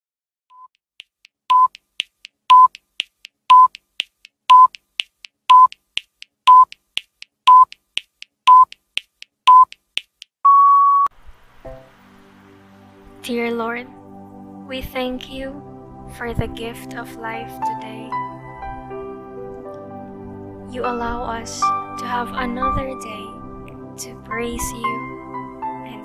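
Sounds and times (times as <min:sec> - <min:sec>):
longer higher beep: 0:01.5 - 0:01.7, 0:03.5 - 0:03.7
electronic countdown beeps: 0:01.5 - 0:01.9, 0:02.5 - 0:02.8, 0:03.5 - 0:03.8, 0:04.5 - 0:04.8, 0:05.5 - 0:05.8, 0:06.5 - 0:06.8, 0:07.5 - 0:07.8, 0:08.5 - 0:08.8, 0:09.5 - 0:09.8
soft music: 0:11.5 - 0:26.0.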